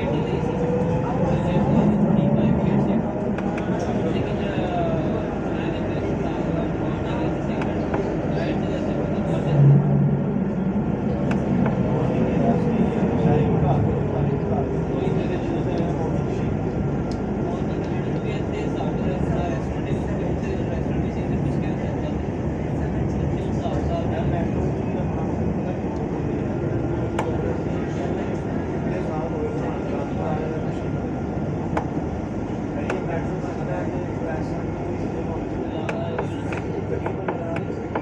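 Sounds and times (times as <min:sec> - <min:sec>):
tram running noise: 0:00.0 - 0:38.0.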